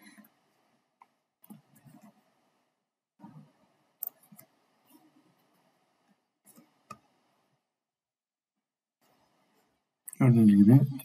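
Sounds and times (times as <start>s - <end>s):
computer mouse click: 4.0s - 4.5s.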